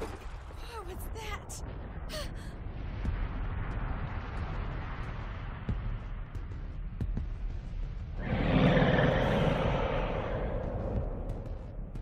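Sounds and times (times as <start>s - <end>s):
steady low rumble: 1.5s - 12.0s.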